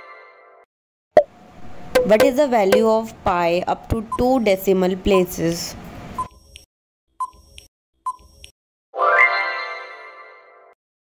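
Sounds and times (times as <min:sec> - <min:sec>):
sharp pop: 0:02.0 - 0:02.8.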